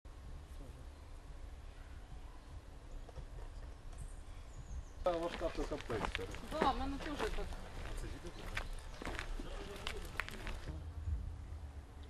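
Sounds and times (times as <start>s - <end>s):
footsteps on dirt path: 5.0s - 10.8s
low rumble: 7.6s - 12.0s.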